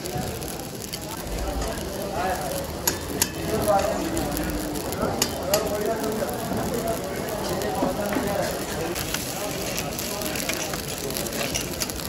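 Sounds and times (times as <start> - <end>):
meat sizzling in a pan: 0.0 - 12.0.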